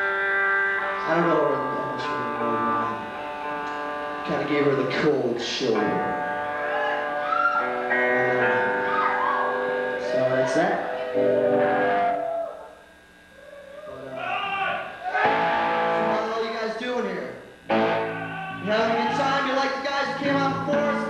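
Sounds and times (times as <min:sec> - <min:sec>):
electric guitar bending notes: 0:00.0 - 0:16.6, 0:17.3 - 0:21.0
person singing: 0:18.3 - 0:21.0.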